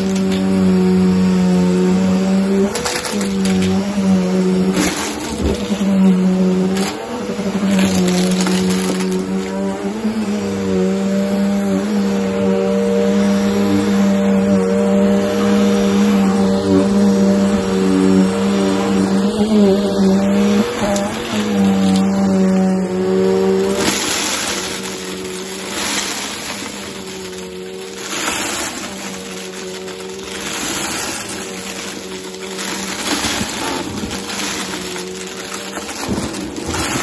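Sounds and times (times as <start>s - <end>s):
vacuum cleaner running on a rug: 0.0s - 37.0s.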